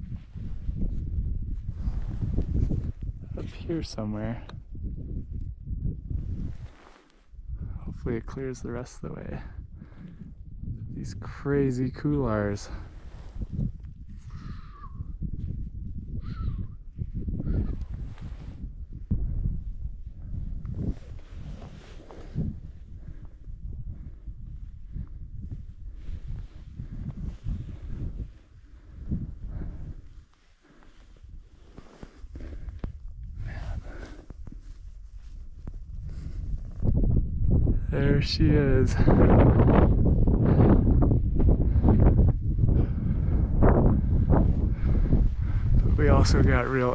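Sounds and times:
wind buffeting microphone: 0:00.0 - 0:46.9.

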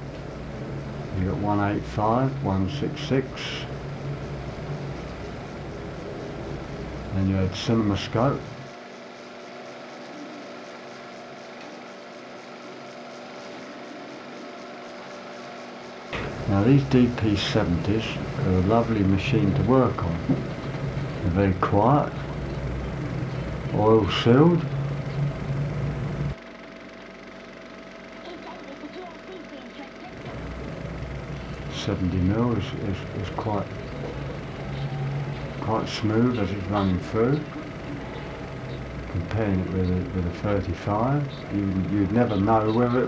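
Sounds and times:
film projector whirring: 0:00.0 - 0:43.0
thin steady tone: 0:28.3 - 0:43.0.

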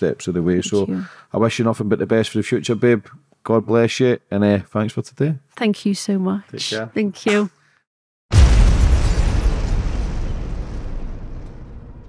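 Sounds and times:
deep cinematic boom: 0:08.3 - 0:12.0.

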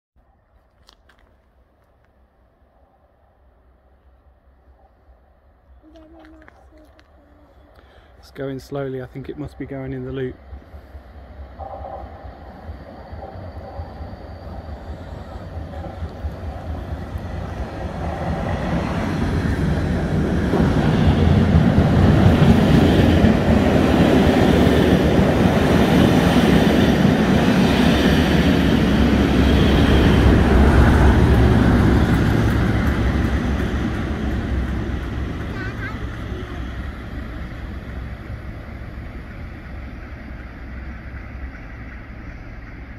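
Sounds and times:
diesel locomotive engine: 0:03.3 - 0:42.9
train wheels on rails: 0:05.9 - 0:42.9.

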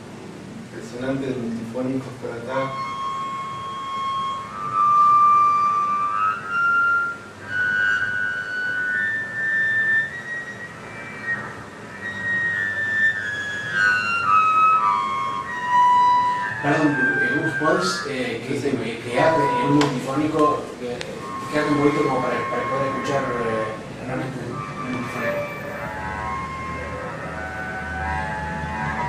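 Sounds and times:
bowed double bass harmonics: 0:00.8 - 0:29.0.

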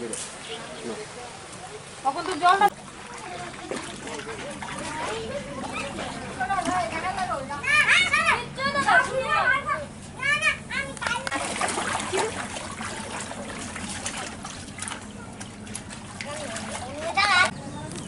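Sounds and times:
feet splashing through shallow water: 0:02.4 - 0:07.4, 0:11.2 - 0:17.5
child's high-pitched voice: 0:07.6 - 0:11.3.

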